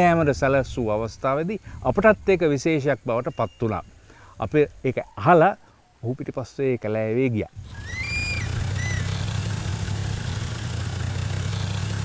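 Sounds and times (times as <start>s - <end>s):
jeep engine running: 7.6s - 12.0s.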